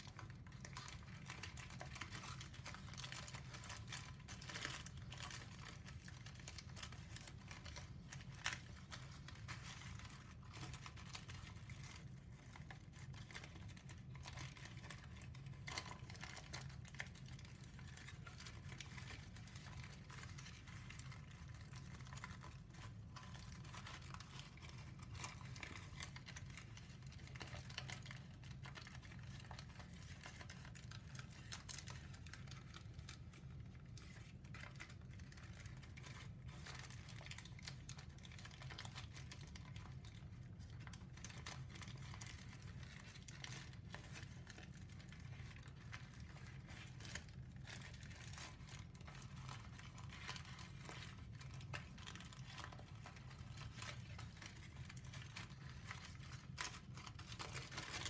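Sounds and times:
paper crinkling and rustling: 0.0 - 58.0.

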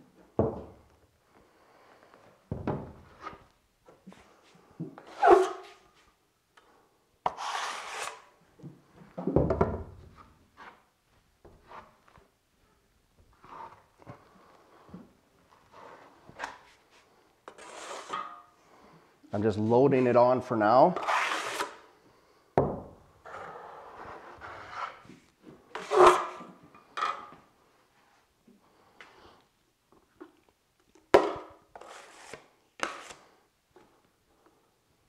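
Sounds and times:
trowel spreading compound on wall: 7.2 - 8.3, 17.5 - 18.5, 21.0 - 21.8, 31.7 - 33.3
trowel scraping against hawk: 7.3 - 8.3, 17.5 - 18.4, 21.0 - 21.8.

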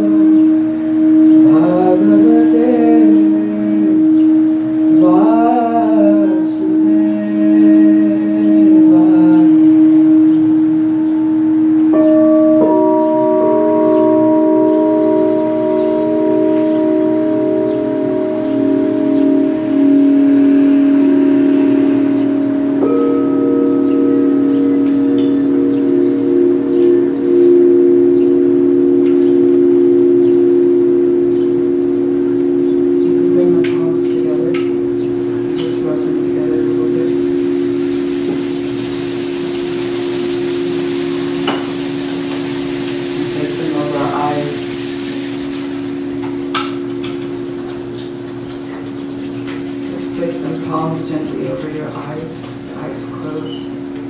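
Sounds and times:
singing bowls ringing: 0.0 - 54.0.

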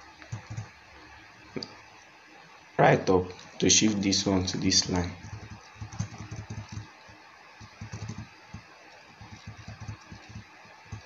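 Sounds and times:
computer keyboard keys tapping: 0.2 - 0.7, 5.2 - 7.0, 7.6 - 11.0.

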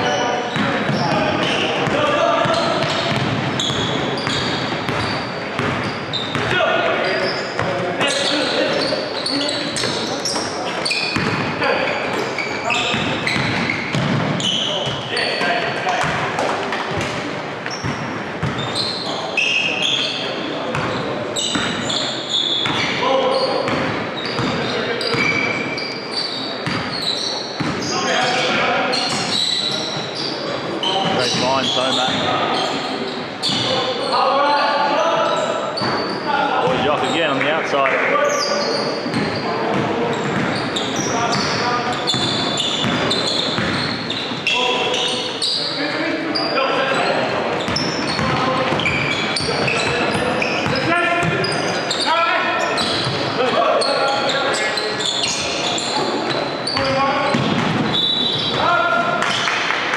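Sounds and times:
sneakers squeaking: 0.0 - 59.5.

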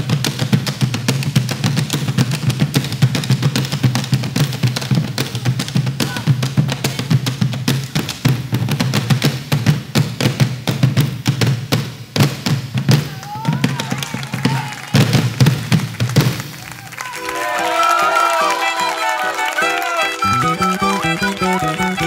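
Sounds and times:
folk drums booming: 0.0 - 16.7, 20.2 - 22.0
violin melody: 17.2 - 22.0.

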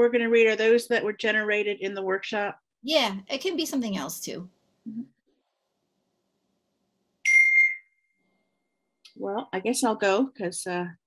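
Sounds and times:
bright ding: 7.2 - 8.2.

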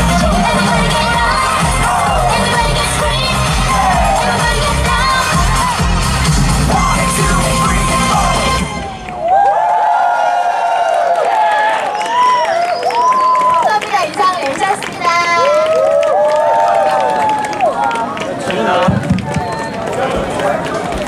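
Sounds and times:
pop dance music with bass beat: 0.0 - 8.8
audience cheering and shouting: 0.0 - 14.0, 15.0 - 20.6.

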